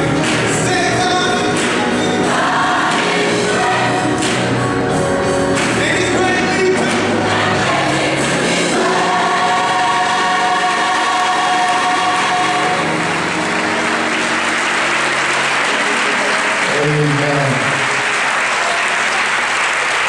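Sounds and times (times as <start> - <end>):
gospel choir singing with band: 0.0 - 19.4
applause and cheers: 10.2 - 20.0.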